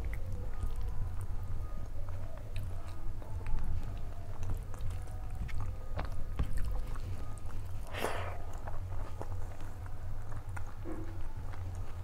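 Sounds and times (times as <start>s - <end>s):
chewing and wet mouth sounds: 0.0s - 12.0s
steady low hum: 0.0s - 12.0s.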